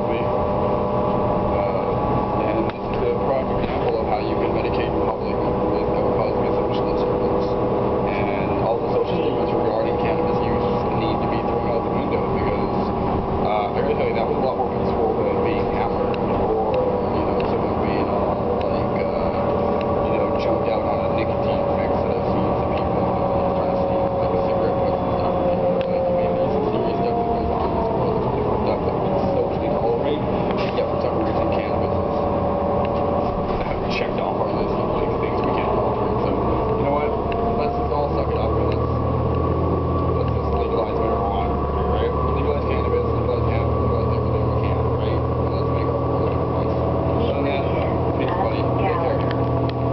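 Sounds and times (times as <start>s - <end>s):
bus engine drone with whine: 0.0s - 49.9s.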